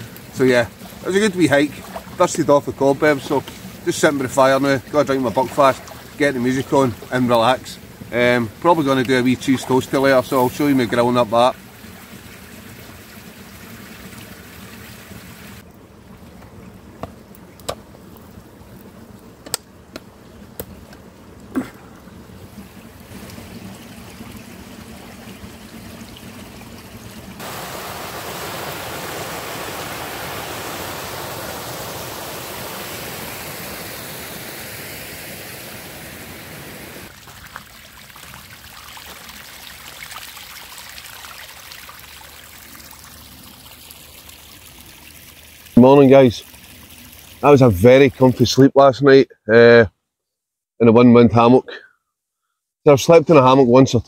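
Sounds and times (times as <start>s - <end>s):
stream rushing over rocks: 0.0s - 7.4s, 27.4s - 37.2s
faint hiss: 0.0s - 11.6s, 27.4s - 37.1s
sharp snaps: 19.4s - 20.7s.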